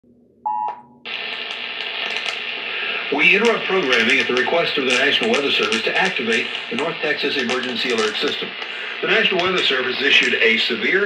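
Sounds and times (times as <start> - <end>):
electronic beep: 0.5 - 1.0
static hiss: 1.1 - 11.0.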